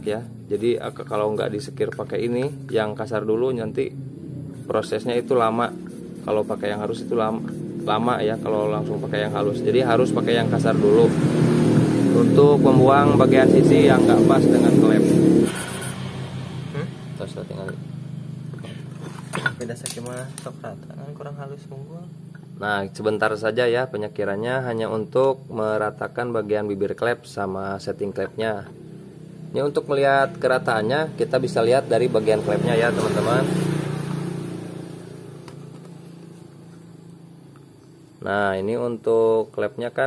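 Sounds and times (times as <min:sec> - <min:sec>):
vehicle engine humming: 0:00.0 - 0:23.4, 0:27.7 - 0:38.3
motorcycle engine idling: 0:03.9 - 0:13.0.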